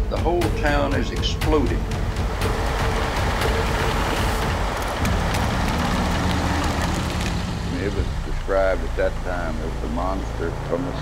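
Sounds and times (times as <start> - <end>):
roaring rumble: 1.8 - 10.9.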